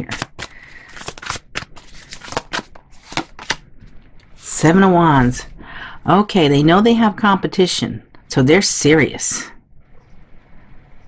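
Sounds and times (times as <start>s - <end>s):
cards being shuffled: 0.0s - 3.6s.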